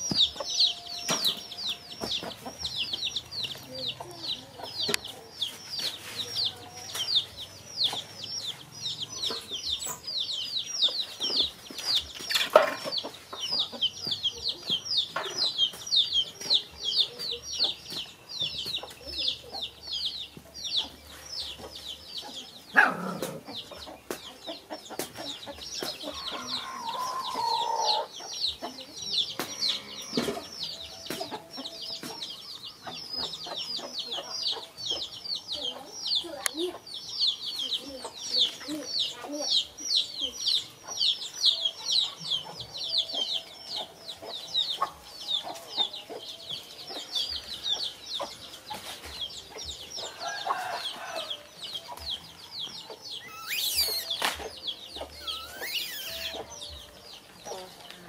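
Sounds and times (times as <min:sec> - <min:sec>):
chick chirping: 0:00.0 - 0:58.0
shrill rising squeal: 0:53.2 - 0:54.2, 0:55.2 - 0:56.4.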